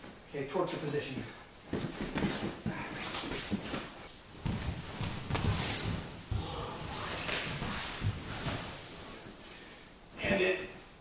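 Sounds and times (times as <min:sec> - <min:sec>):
wrestling shoes squeaking: 0:01.6 - 0:04.0, 0:05.4 - 0:06.6
bodies thumping on a mat: 0:01.6 - 0:05.7.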